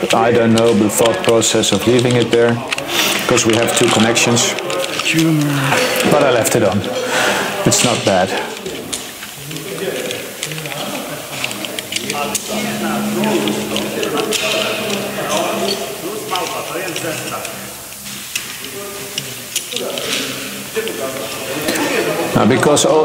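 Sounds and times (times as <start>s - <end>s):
indistinct voices: 0.0s - 23.0s.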